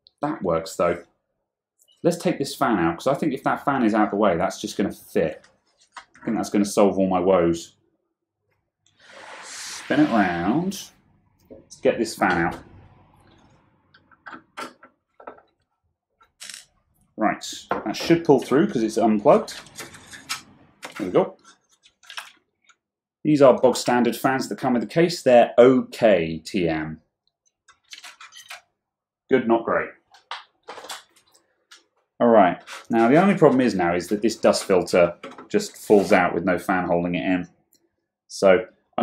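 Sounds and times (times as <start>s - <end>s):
plastic parts scraping and rustling: 17.8s - 22.8s, 30.2s - 31.9s, 32.6s - 36.3s.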